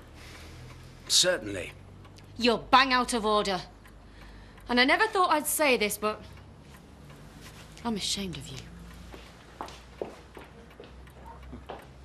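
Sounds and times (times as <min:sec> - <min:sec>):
clock ticking: 0:00.0 - 0:12.0.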